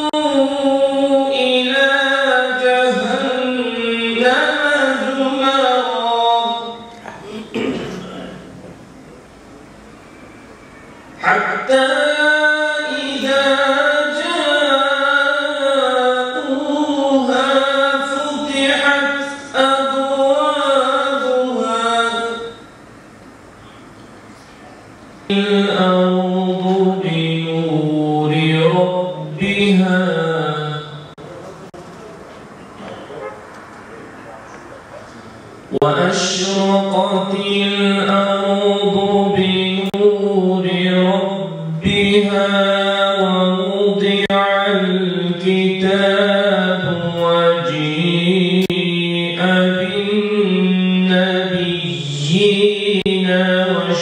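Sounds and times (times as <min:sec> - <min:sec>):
man chanting unaccompanied: 0:00.0 - 0:09.3, 0:11.2 - 0:22.7, 0:25.3 - 0:54.0.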